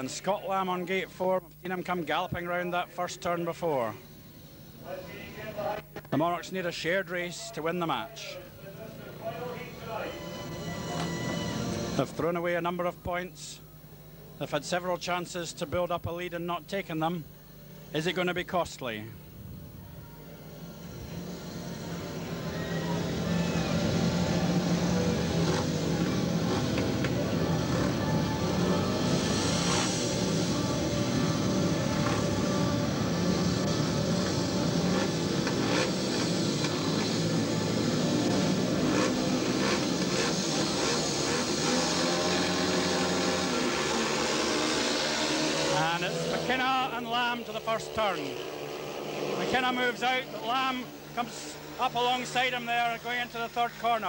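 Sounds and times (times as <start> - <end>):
motorcycle engines revving: 8.0 - 12.4, 19.2 - 54.0.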